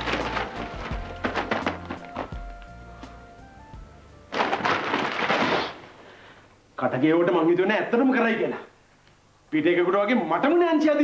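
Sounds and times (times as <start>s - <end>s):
newspaper rustling: 0.0s - 3.3s, 4.2s - 6.3s
background music: 0.0s - 4.9s.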